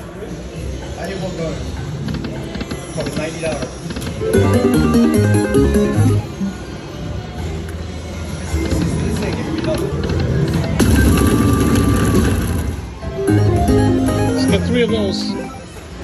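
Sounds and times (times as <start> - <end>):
slot machine game music: 4.2 - 6.6, 13.0 - 15.8.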